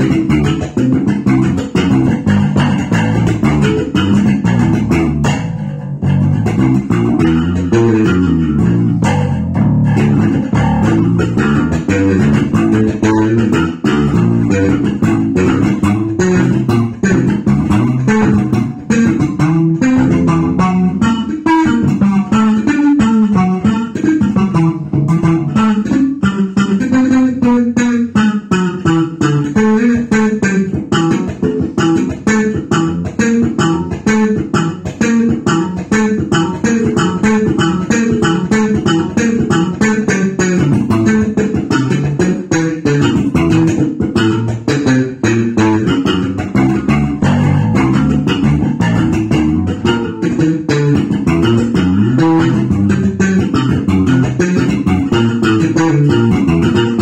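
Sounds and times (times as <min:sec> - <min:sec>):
electric bass line fingerstyle: 0:00.0 - 0:57.0.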